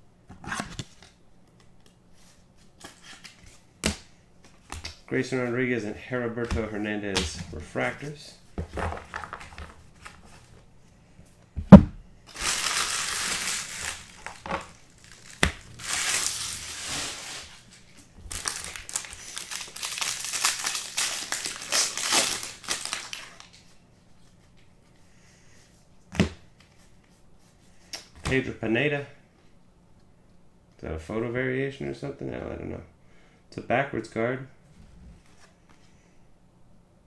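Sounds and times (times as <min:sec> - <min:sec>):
foil wrapper crinkling: 0:12.3 - 0:23.6.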